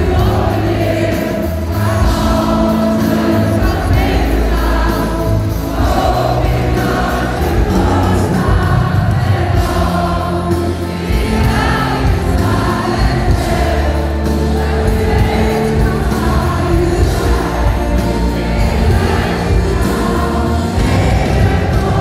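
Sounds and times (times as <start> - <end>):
crowd singing along: 0.0 - 22.0
live pop music over sound system: 0.0 - 22.0.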